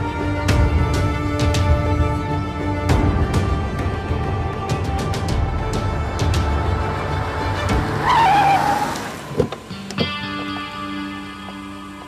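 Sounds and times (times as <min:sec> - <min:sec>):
background music: 0:00.0 - 0:12.0
tyres screeching: 0:07.2 - 0:10.2.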